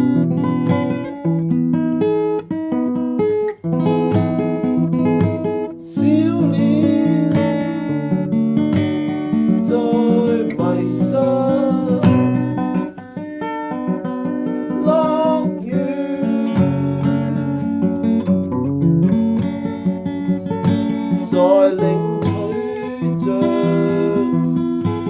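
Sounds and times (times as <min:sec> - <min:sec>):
acoustic guitar music: 0:00.0 - 0:25.0.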